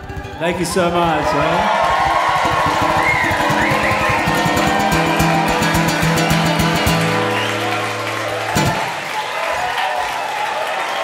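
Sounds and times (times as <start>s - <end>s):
audience cheering: 0.0s - 11.0s
audience clapping: 0.5s - 11.0s.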